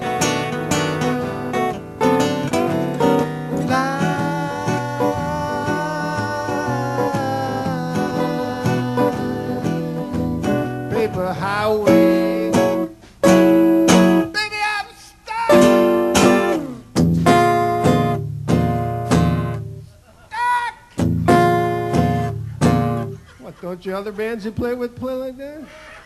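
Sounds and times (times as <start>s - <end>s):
acoustic guitars strumming and picking: 0.0s - 14.6s, 15.3s - 19.8s, 20.9s - 23.6s.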